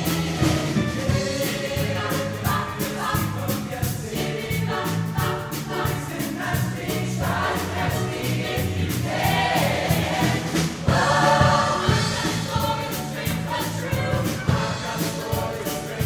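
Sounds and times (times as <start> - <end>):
bass: 0.0 - 16.0
choir singing pop song: 0.0 - 16.0
steady drum beat: 0.0 - 16.0.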